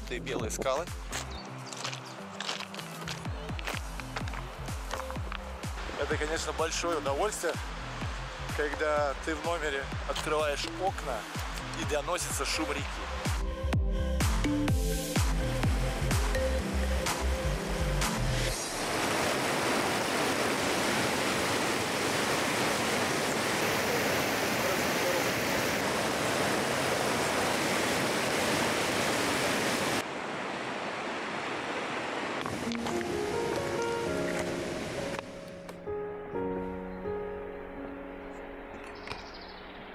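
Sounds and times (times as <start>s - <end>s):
music with a beat: 2.6s - 5.9s, 13.2s - 18.5s
river rushing over pebbles: 18.6s - 35.4s.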